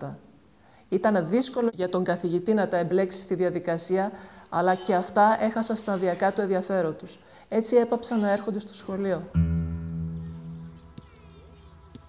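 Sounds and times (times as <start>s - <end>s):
acoustic guitar chord ringing: 9.3s - 11.8s
soft plucked guitar notes: 9.3s - 12.0s
crickets chirping: 9.5s - 12.0s.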